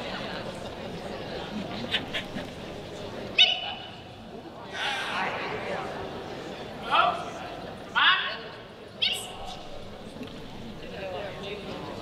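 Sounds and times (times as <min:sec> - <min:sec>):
person shouting a command: 0:07.9 - 0:08.5.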